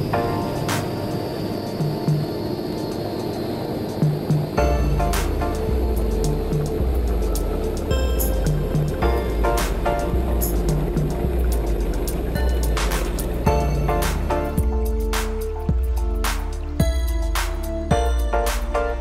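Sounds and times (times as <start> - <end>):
music with steady beat: 0.0 - 19.0
deep bass: 4.2 - 19.0.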